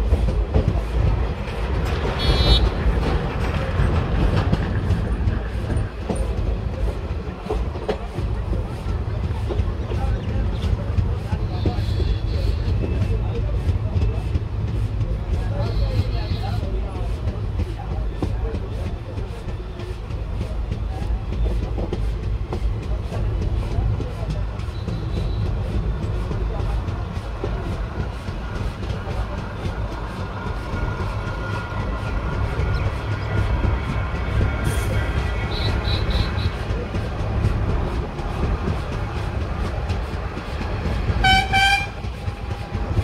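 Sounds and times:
train clatter: 0:00.0 - 0:43.0
train wheels rumbling on rail: 0:00.0 - 0:43.0.

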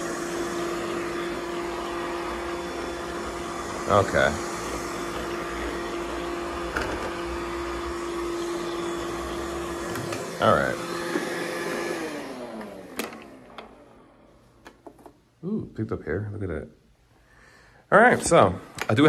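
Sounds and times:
robotic vacuum motor whir: 0:00.0 - 0:14.2.

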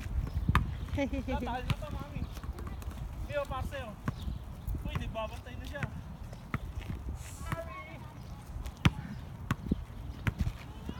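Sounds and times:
basketball bouncing on pavement: 0:00.0 - 0:10.9.

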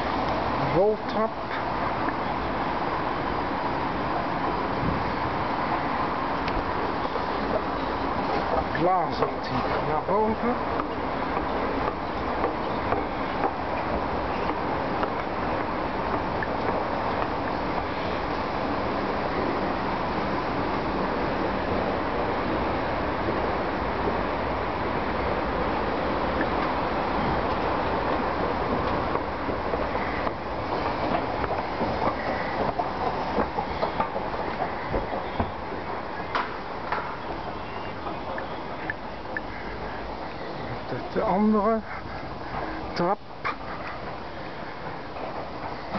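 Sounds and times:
escalator running drone: 0:00.0 - 0:45.9
steady rushing noise: 0:00.0 - 0:45.9.

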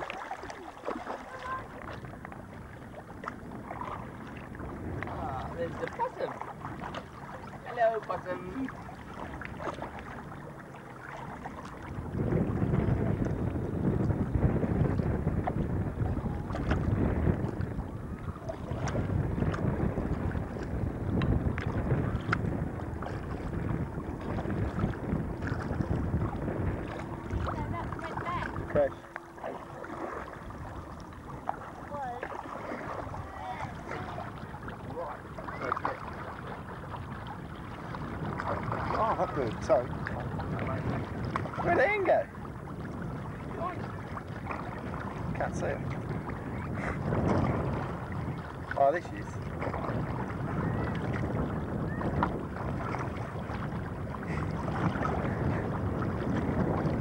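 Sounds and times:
water noise on open water: 0:00.0 - 0:57.0
wind: 0:00.0 - 0:57.0
faint voices: 0:26.2 - 0:36.0.

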